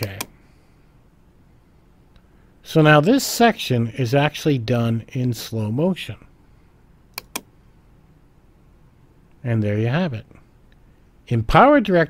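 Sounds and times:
computer mouse click: 7.1s - 7.5s.

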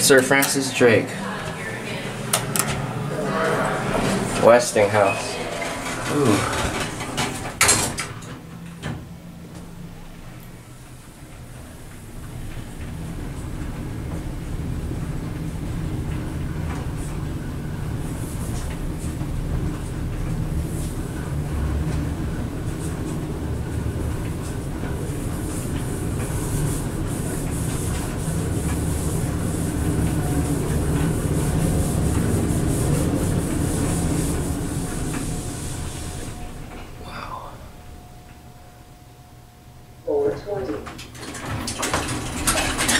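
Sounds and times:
elevator rumble and air rush: 0.0s - 42.9s.

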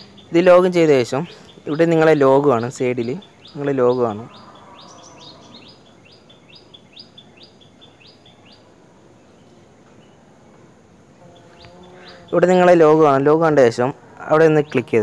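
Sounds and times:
bird chirping: 0.0s - 15.0s.

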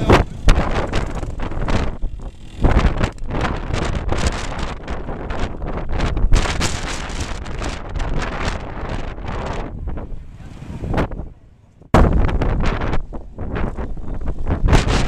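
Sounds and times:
motorcycle engine running: 0.0s - 8.5s
wind buffeting microphone: 0.0s - 15.0s.

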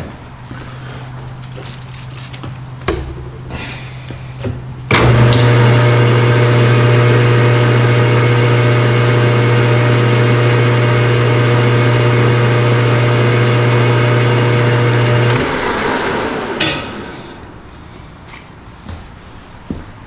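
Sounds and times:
metal lathe humming: 4.9s - 17.6s.

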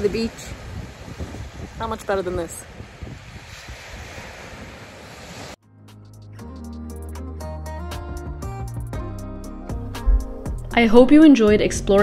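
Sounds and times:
sea surf: 0.0s - 5.6s
wind buffeting microphone: 0.0s - 5.6s
background music: 5.6s - 12.0s.

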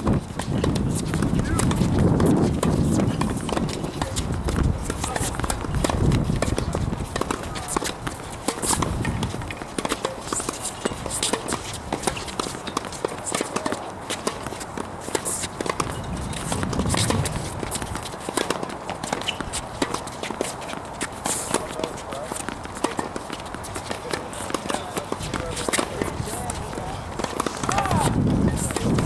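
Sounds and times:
shoes on hard court: 0.0s - 29.0s
tennis balls bouncing: 0.0s - 29.0s
indistinct voices: 24.0s - 29.0s.

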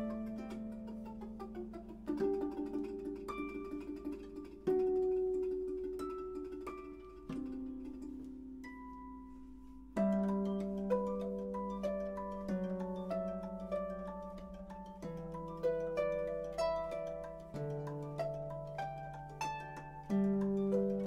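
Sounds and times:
harps playing a slow duet: 0.0s - 21.0s.

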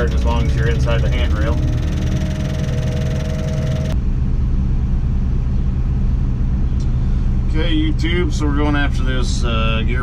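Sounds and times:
crane engine droning: 0.0s - 10.0s.

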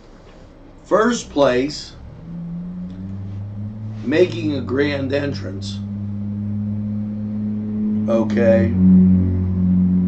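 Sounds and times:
low sustained drone tones: 0.7s - 10.0s.

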